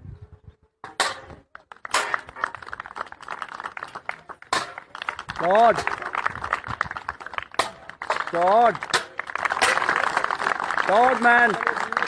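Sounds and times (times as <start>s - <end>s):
people clapping: 1.5s - 12.0s.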